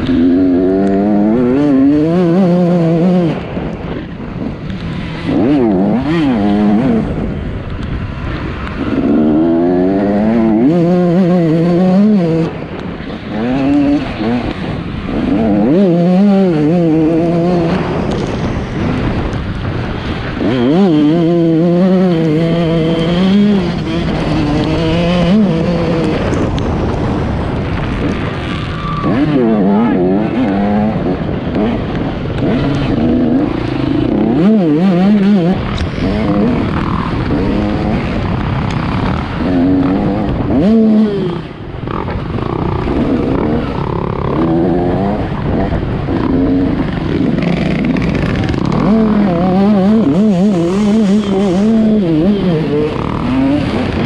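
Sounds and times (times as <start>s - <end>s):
constant noisy rush: 0.0s - 54.0s
dirt bike engine revving: 0.0s - 54.0s.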